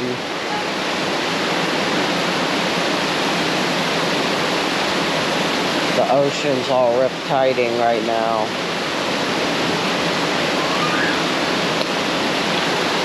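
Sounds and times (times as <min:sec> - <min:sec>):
heavy rain hissing: 0:00.0 - 0:13.0.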